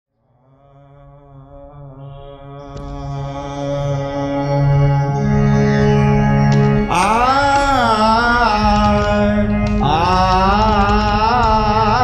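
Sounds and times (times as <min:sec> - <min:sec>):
harmonium held notes: 0:01.2 - 0:12.0.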